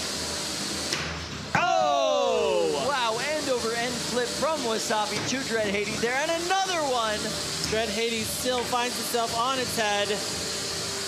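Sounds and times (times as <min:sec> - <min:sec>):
commentator exclaiming: 0:01.6 - 0:03.5.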